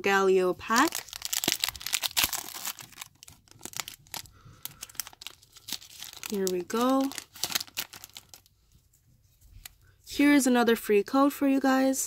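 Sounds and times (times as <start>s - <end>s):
foil crinkling and crackling: 0.6s - 8.5s
foil wrapper torn open: 0.7s - 8.5s.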